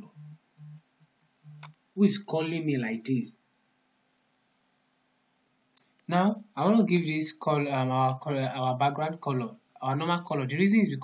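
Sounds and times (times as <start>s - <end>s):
mobile phone vibrating: 0.0s - 1.7s.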